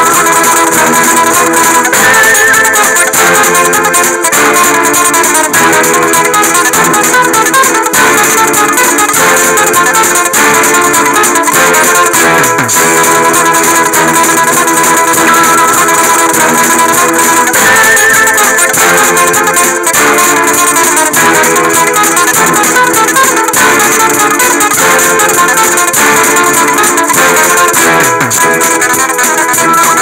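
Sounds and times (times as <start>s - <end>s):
plucked guitar music: 0.0s - 30.0s.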